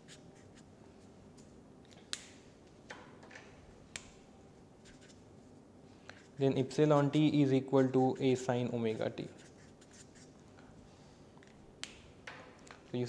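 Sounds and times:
marker scratching on paper: 0.0s - 0.7s, 4.8s - 5.2s, 6.1s - 10.4s.

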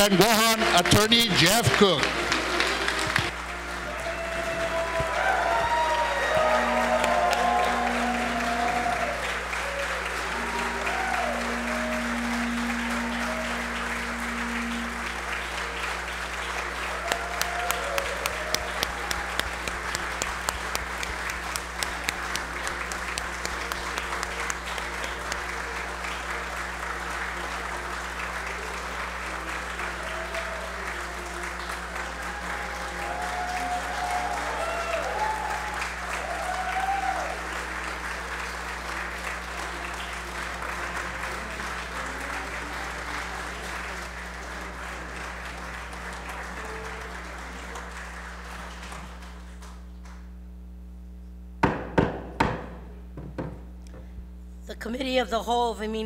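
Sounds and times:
audience applause: 0.0s - 50.3s
sharp loud claps: 14.2s - 25.5s.

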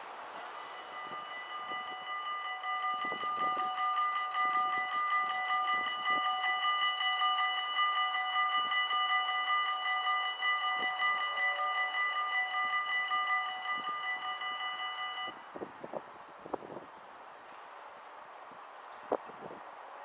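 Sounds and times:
level crossing warning bells: 0.0s - 15.9s.

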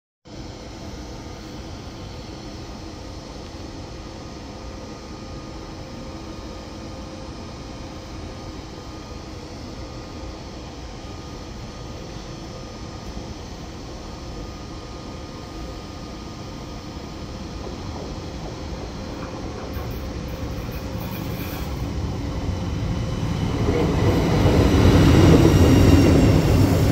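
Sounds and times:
railway station rumble and hum: 0.3s - 26.9s
faint held tones from train: 0.6s - 26.9s
approaching train rumble: 17.0s - 26.9s.

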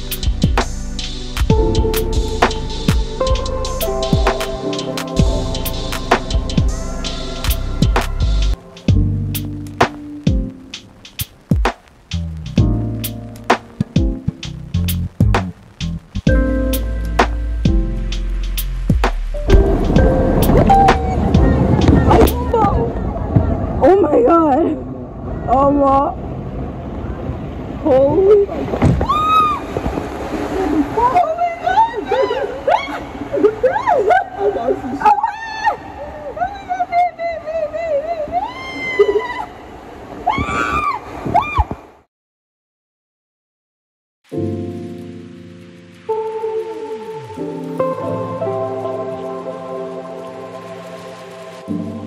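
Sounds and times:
background music: 0.0s - 22.9s, 44.4s - 52.0s
water rushing down slide: 17.1s - 24.6s, 25.4s - 36.4s, 46.0s - 52.0s.

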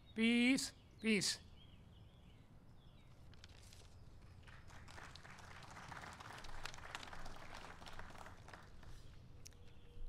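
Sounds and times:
audience applause: 4.5s - 8.8s.

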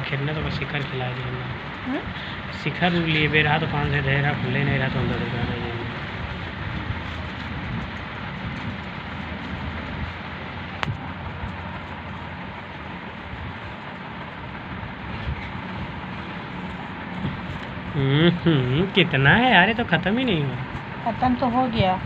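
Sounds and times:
steady rushing noise: 0.0s - 22.0s.

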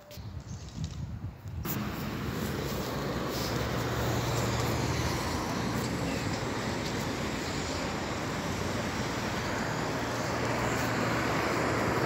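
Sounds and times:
road traffic: 0.0s - 12.0s.

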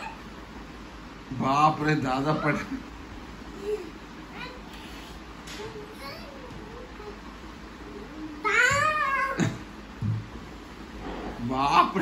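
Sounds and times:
child wailing: 8.4s - 9.5s.

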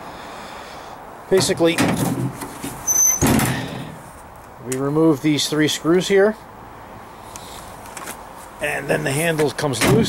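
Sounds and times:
tailgate clunk and rattle: 1.4s - 4.0s
tailgate latch squeak: 2.8s - 3.6s.

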